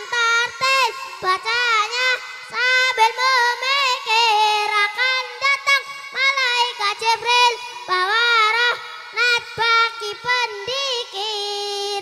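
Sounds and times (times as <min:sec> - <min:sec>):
boy singing devotional chant: 0:00.0 - 0:12.0.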